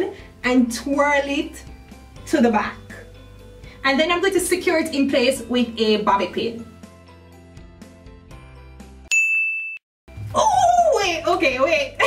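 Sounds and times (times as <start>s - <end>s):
faint background music: 0.0s - 7.5s, 10.2s - 12.0s
bright ding: 9.1s - 9.8s.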